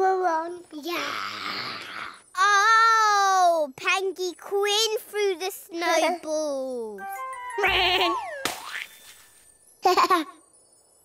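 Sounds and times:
springy cartoon boing: 7.6 - 8.9.

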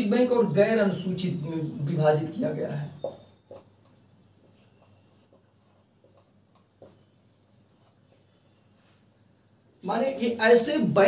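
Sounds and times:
marker writing on whiteboard: 0.4 - 10.2.

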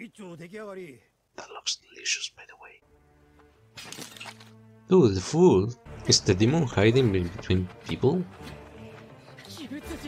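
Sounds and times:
soft background music: 1.8 - 10.0.

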